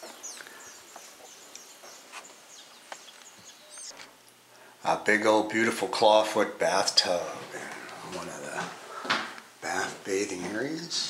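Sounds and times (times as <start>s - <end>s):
small birds chirping: 0.0s - 4.6s
outdoor hiss: 0.0s - 11.0s.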